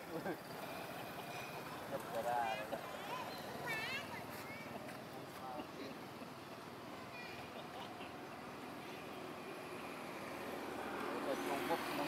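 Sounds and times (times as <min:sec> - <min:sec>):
steady background noise: 0:00.0 - 0:12.0
monkey call: 0:07.2 - 0:09.4.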